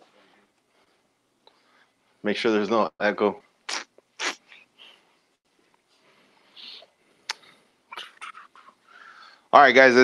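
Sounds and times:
soft rustles: 4.8s - 7.7s.

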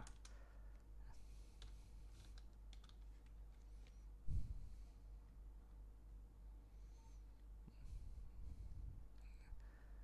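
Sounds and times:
keyboard keys clicking: 2.3s - 3.3s.

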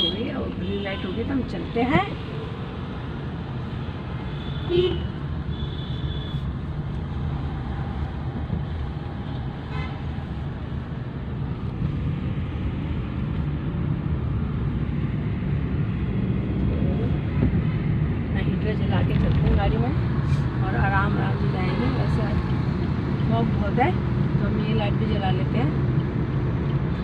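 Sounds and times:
car engine and tyre rumble: 0.0s - 27.0s.

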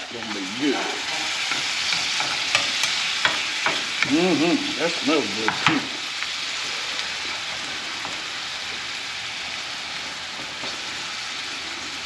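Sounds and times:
vegetables sizzling in a frying pan: 0.0s - 12.0s.

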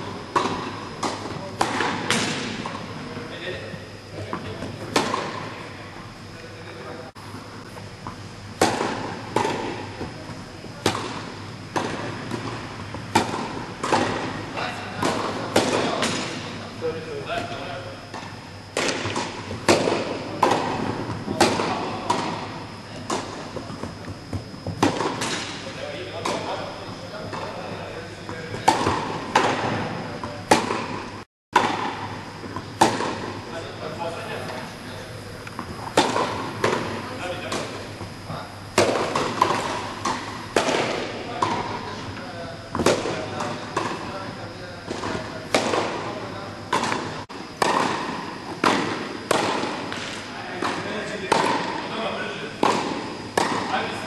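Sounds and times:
tennis balls struck by rackets: 0.2s - 3.0s, 4.2s - 5.7s, 7.6s - 16.6s, 17.3s - 33.6s, 35.5s - 42.1s, 42.7s - 54.0s
tennis balls bouncing on court: 0.3s - 3.0s, 4.2s - 5.6s, 7.7s - 16.5s, 18.1s - 27.7s, 28.3s - 33.4s, 35.5s - 38.2s, 38.8s - 41.9s, 42.7s - 52.0s, 52.6s - 54.0s.

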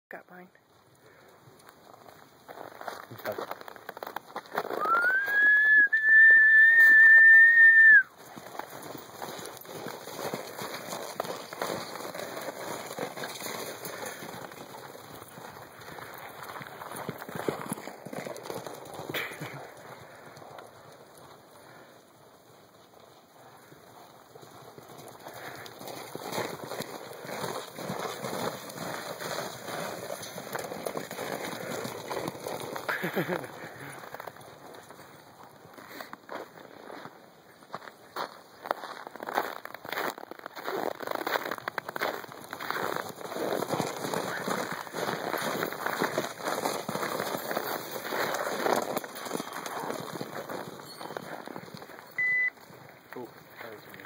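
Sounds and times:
horses' hooves galloping on snow: 0.4s - 54.0s
long rising whistle: 4.8s - 8.1s.

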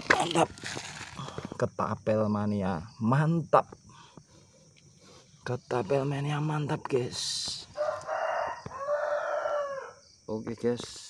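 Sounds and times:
rooster crowing: 7.7s - 10.1s.

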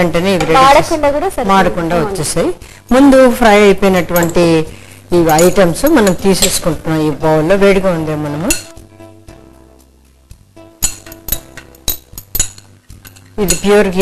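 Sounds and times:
nuts clinking on glass bowl: 10.8s - 14.0s.

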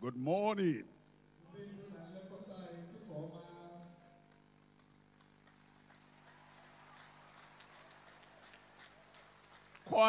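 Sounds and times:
man speaking: 0.0s - 4.0s.

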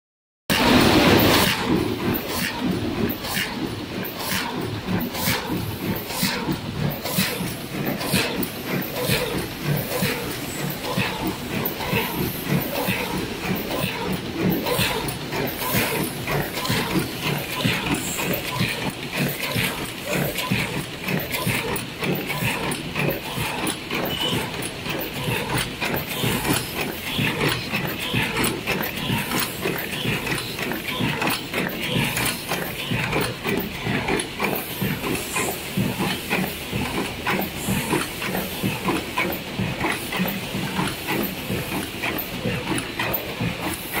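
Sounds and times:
machine rapid mechanical clicks: 0.5s - 44.0s.

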